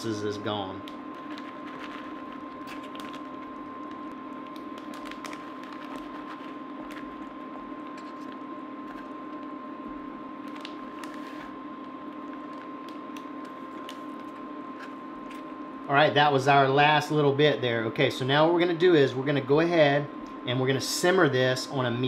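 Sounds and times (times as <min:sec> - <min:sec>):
steady hum with high tone: 0:00.0 - 0:22.0.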